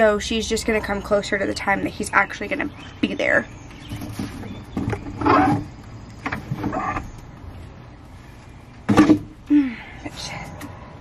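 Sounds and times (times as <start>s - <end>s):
frame scraping and creaking: 3.8s - 9.1s.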